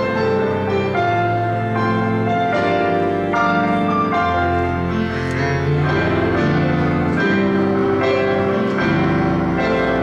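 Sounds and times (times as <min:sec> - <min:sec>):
organ playing held chords: 0:00.0 - 0:10.0.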